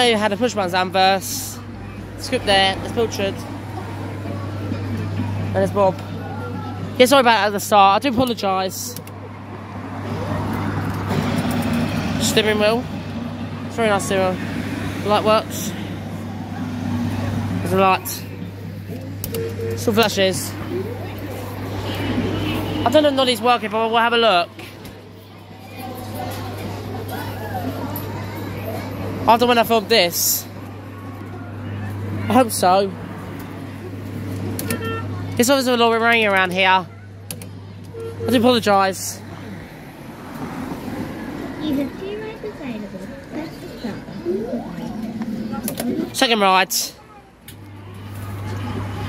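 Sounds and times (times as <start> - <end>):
passing cars: 0.0 - 49.0.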